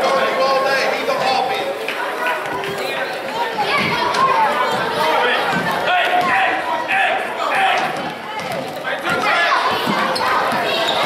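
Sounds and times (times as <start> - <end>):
crowd chatter and calls: 0.0 - 11.0.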